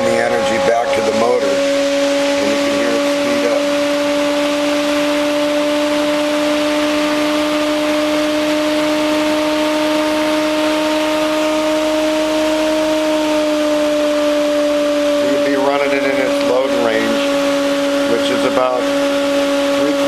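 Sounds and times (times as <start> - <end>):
motor whine: 0.0 - 20.0.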